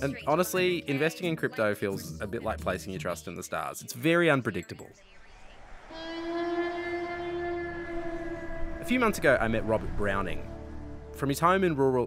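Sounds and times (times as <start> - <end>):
distant train horn: 5.8 - 11.2.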